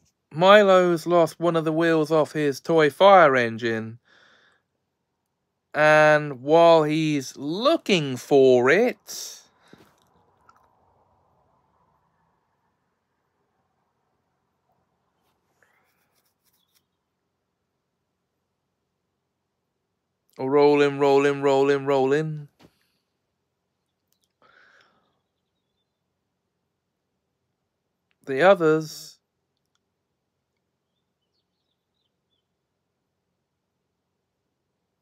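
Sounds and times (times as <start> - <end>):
faint clicks and rustles: 15.1 - 17.2
faint clicks: 23.9 - 24.9.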